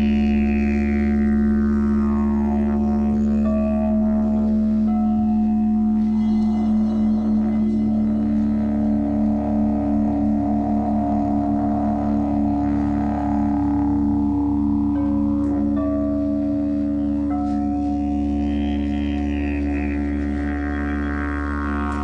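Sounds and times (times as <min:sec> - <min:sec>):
crystal singing bowls drone: 0:00.0 - 0:22.0.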